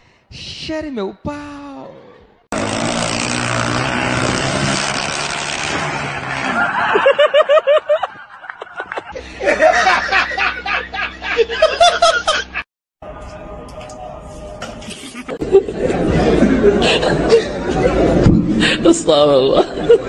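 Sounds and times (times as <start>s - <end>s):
man laughing loudly: 6.5s - 12.6s, 14.8s - 17.9s.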